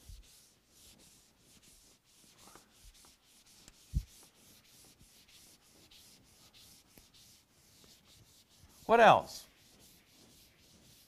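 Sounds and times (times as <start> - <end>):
eraser rubbing on whiteboard: 0.0 - 11.0.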